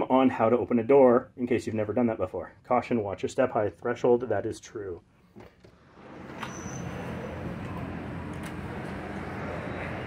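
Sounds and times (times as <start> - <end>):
low hum: 5.7 - 10.0.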